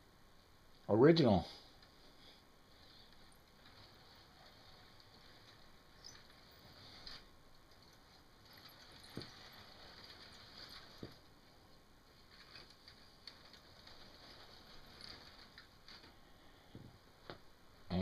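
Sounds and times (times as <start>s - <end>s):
toy train cars rolling on track: 2.8s - 16.5s.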